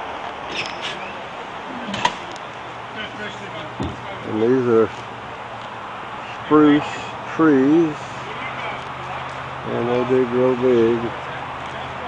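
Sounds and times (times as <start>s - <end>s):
faint distant voices: 0.5s - 12.0s
soft thump: 3.8s - 4.0s.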